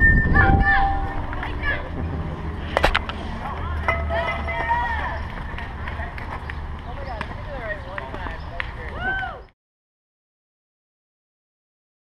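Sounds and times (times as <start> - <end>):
wind rumbling on microphone: 0.0 - 3.7
distant players shouting: 3.4 - 5.5.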